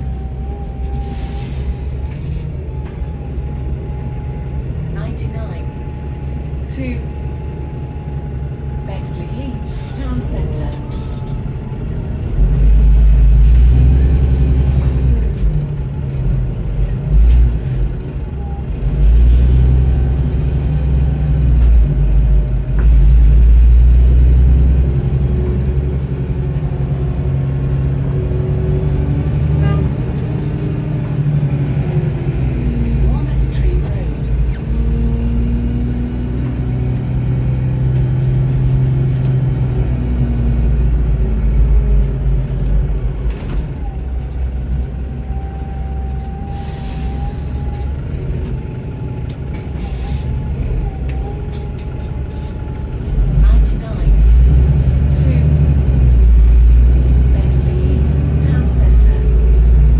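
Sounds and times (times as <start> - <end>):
bus engine rumble: 0.0 - 59.9.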